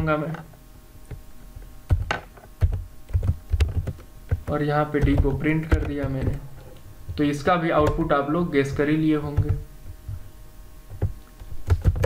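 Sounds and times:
computer keyboard typing: 0:01.9 - 0:06.4, 0:08.7 - 0:09.7, 0:11.7 - 0:12.0.

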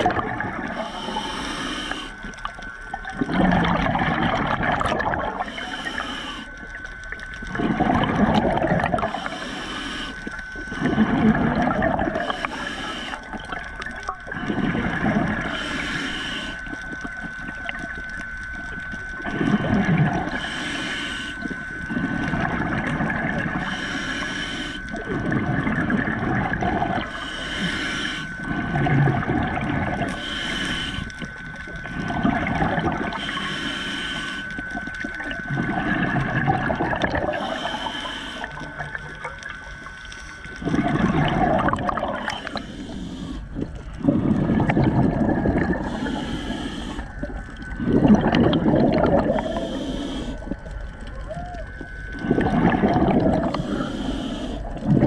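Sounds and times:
exhaled bubbles gushing: 0:00.0 - 0:01.2, 0:02.2 - 0:06.0, 0:06.6 - 0:09.4, 0:10.6 - 0:15.8, 0:16.5 - 0:20.5, 0:21.4 - 0:23.8, 0:24.9 - 0:27.2, 0:28.4 - 0:33.4, 0:34.6 - 0:54.0, 0:54.6 - 0:55.0
regulator hissing inhale: 0:00.6 - 0:03.4, 0:05.2 - 0:07.8, 0:08.8 - 0:17.6, 0:18.4 - 0:51.0, 0:52.1 - 0:55.0.

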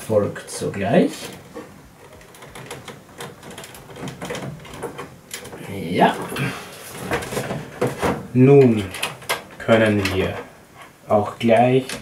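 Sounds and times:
cable rustling: 0:00.0 - 0:12.0.

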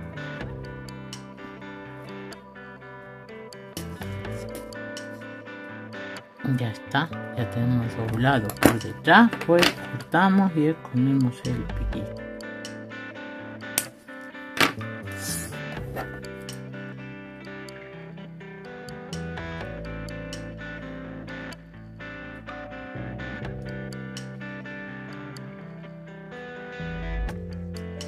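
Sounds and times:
guitar music: 0:00.0 - 0:28.0.

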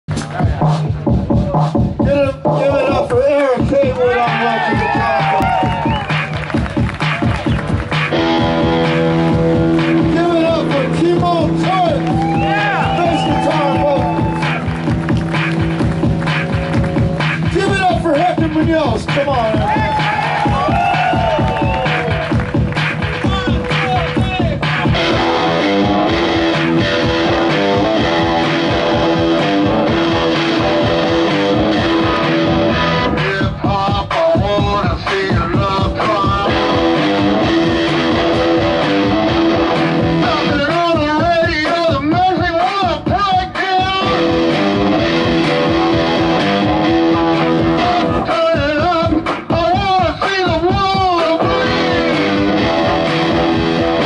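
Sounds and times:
live rock band playing: 0:04.1 - 0:54.0
person singing: 0:27.3 - 0:41.7.

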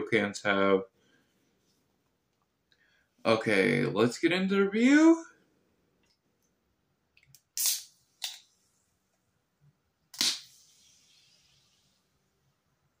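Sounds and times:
can venting gas hiss: 0:07.6 - 0:07.9.

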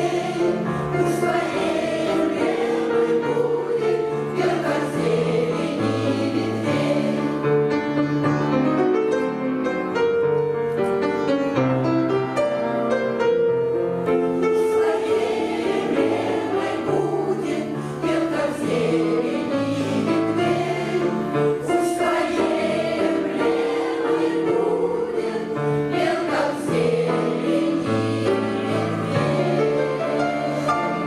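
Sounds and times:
women's choir singing: 0:00.0 - 0:07.7, 0:14.3 - 0:31.0.

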